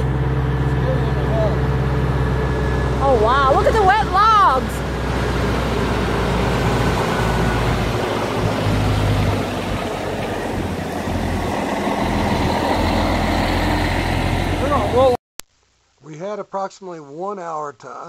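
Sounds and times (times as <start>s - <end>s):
truck diesel engine running: 0.0s - 15.2s.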